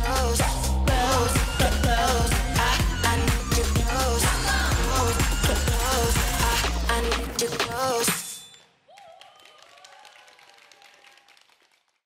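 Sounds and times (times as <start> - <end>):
audience cheering: 8.9 - 11.5
faint audience applause: 8.9 - 12.0.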